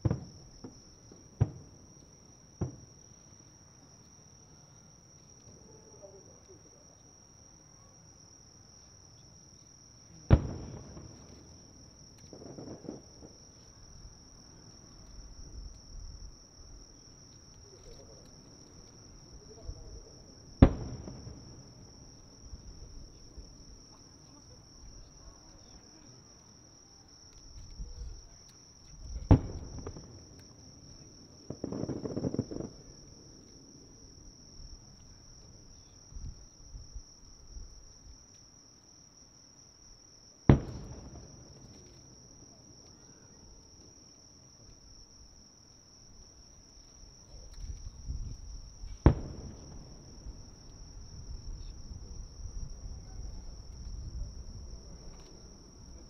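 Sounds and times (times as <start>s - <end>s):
distant firework shells booming: 0.0s - 2.0s, 2.6s - 3.0s, 10.2s - 14.8s, 17.7s - 23.9s, 29.0s - 34.0s, 40.4s - 42.8s, 48.1s - 56.0s
crickets trilling: 0.0s - 56.0s.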